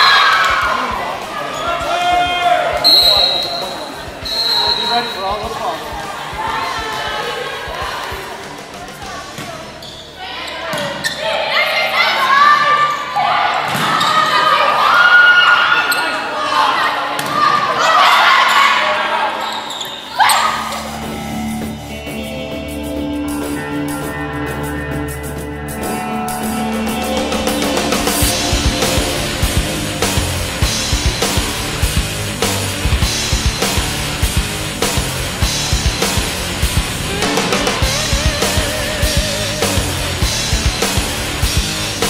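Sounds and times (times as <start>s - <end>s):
players shouting and cheering: 0.0s - 22.1s, 26.4s - 42.0s
referee whistle blast: 2.8s - 5.4s
background music: 20.2s - 42.0s.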